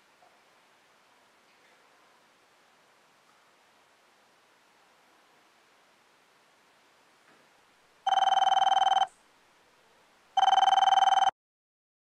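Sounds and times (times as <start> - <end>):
telephone ringing: 8.1 - 9.1, 10.4 - 11.4.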